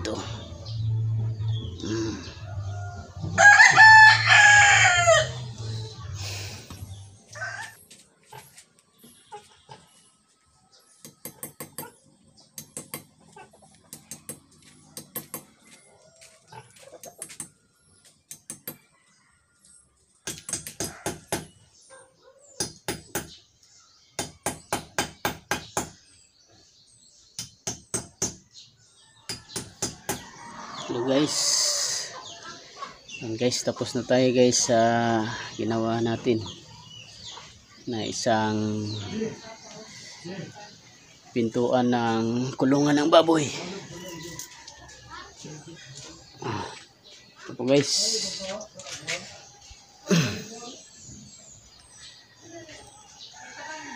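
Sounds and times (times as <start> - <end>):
rooster crowing: 2.4 - 5.5, 29.9 - 32.3, 53.4 - 53.9
hammer striking chisel: 12.6 - 13.1, 15.0 - 15.5, 20.2 - 21.5, 29.3 - 30.2.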